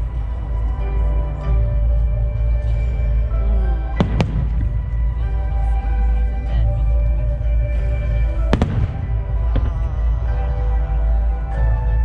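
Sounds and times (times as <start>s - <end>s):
low rumble: 0.0s - 12.0s
music with sustained notes: 0.0s - 12.0s.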